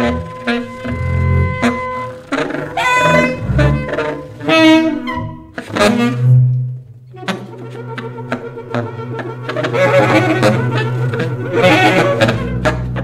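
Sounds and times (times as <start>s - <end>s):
bowed strings: 0.0s - 13.0s
saxophone phrases: 0.0s - 13.0s.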